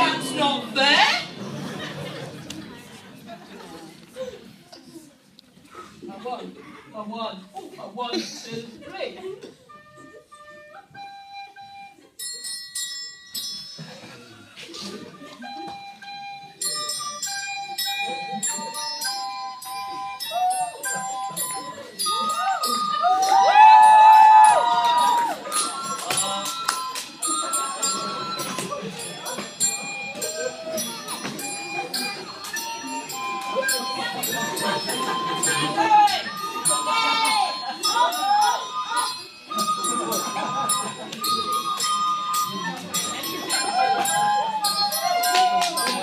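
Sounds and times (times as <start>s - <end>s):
hand bells playing a tune: 9.7s - 46.0s
loud voices: 20.0s - 46.0s.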